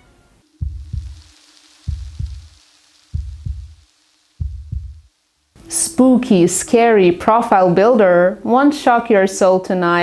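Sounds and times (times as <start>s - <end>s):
faint hum and hiss: 0.0s - 10.0s
heartbeat thumps: 0.6s - 5.1s.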